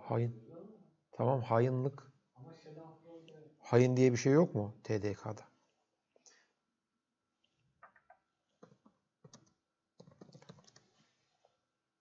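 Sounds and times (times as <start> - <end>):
faint keyboard typing: 7.8 - 11.2.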